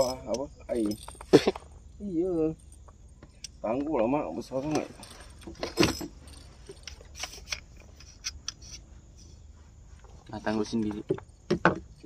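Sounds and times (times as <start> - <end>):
light clicks and rattles: 0.0 - 1.8, 2.5 - 9.3, 10.0 - 12.0.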